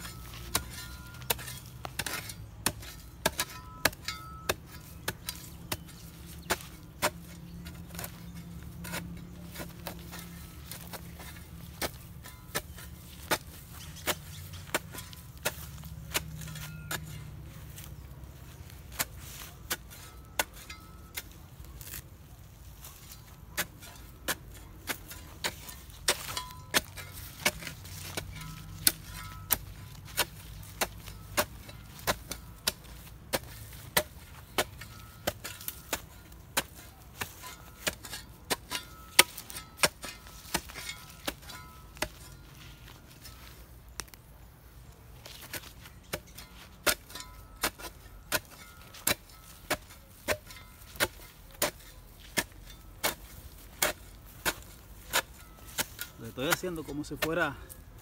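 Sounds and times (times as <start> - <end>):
shovel chopping into soil: 0.0 - 57.8.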